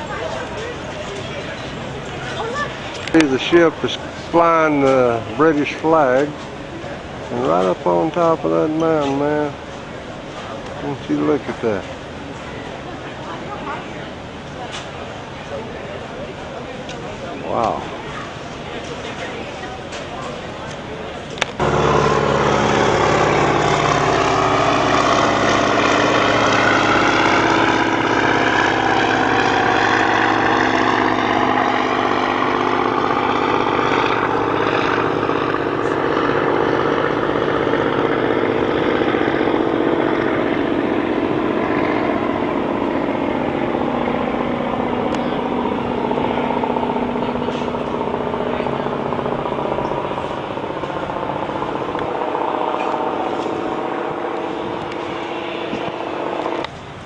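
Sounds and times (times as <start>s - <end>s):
propeller plane engine drone: 0.0s - 57.0s.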